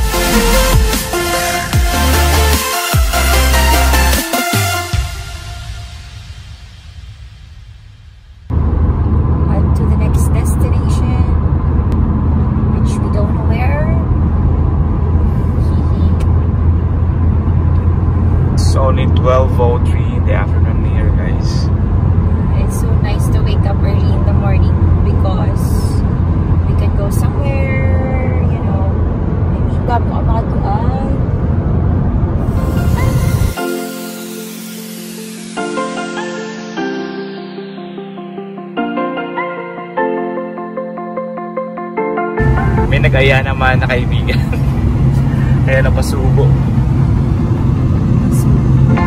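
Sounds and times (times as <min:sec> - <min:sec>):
car road and wind noise: 0:05.2 - 0:33.6, 0:42.4 - 0:49.0.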